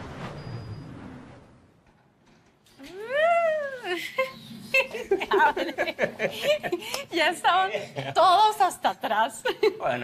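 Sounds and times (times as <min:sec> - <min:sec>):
person whooping: 0:02.8 - 0:04.0.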